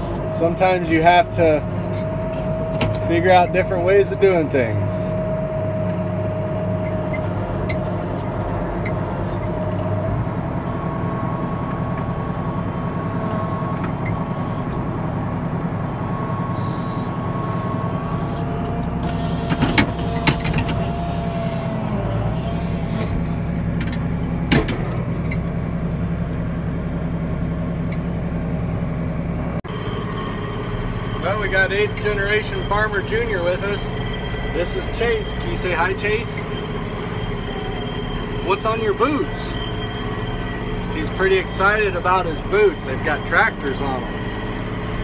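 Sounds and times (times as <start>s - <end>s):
tractor engine under load: 0.0s - 45.0s.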